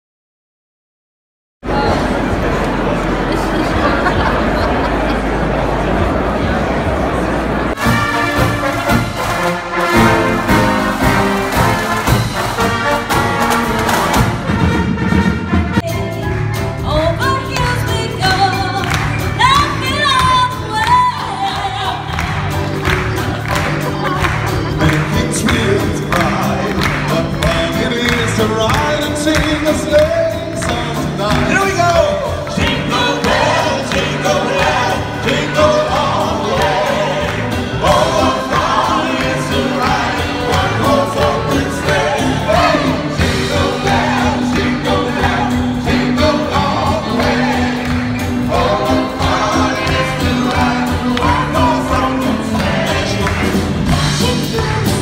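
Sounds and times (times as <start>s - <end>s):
brass fanfare band: 7.7s - 55.0s
singers performing over band: 24.0s - 55.0s.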